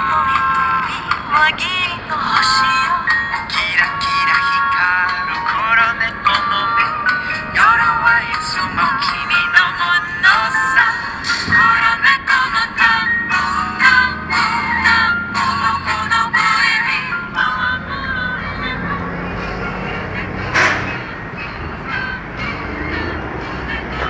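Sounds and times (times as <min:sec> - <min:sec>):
low steady engine rumble: 0:00.0 - 0:24.0
song with singing from radio: 0:00.0 - 0:24.0.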